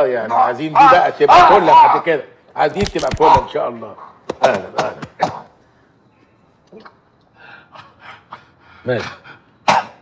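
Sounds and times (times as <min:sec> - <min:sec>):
man coughing: 0:09.7 - 0:10.0.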